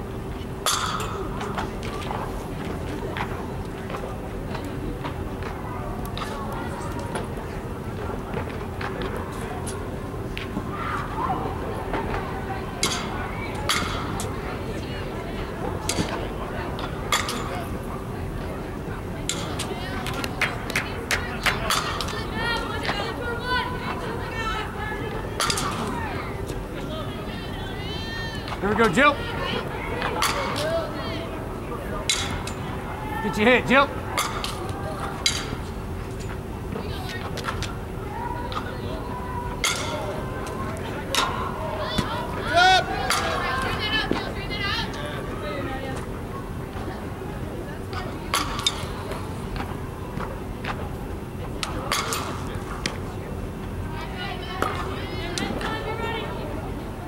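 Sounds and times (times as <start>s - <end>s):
distant voices: 0.0s - 57.0s.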